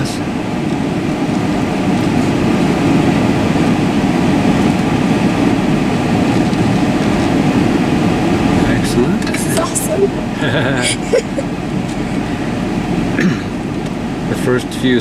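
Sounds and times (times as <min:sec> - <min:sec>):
road noise: 0:00.0 - 0:15.0
vehicle engine rumble: 0:00.0 - 0:15.0.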